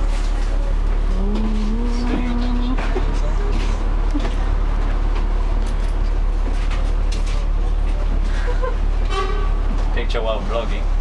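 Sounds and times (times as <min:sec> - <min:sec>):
bus diesel engine running: 0:00.0 - 0:11.0.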